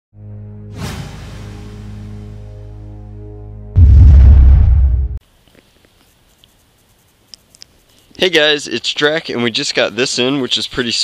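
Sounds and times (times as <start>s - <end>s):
deep cinematic boom: 3.8s - 5.2s
small clicks: 7.3s - 8.2s.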